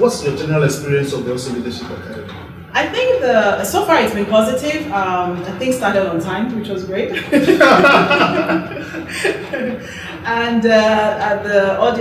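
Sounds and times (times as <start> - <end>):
man chuckling: 7.2 - 10.0
woman chuckling: 7.2 - 10.1.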